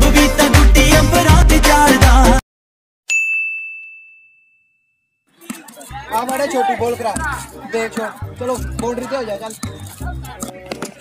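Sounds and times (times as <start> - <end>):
intro music: 0.0 - 2.4
high bell-like ding: 3.1 - 5.2
outdoor background noise: 5.2 - 11.0
voices: 5.3 - 11.0.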